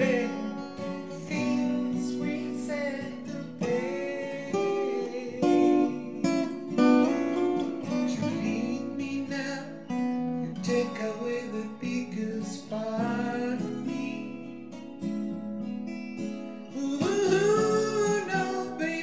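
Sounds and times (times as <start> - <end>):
fingerpicked acoustic guitar: 0.0 - 19.0.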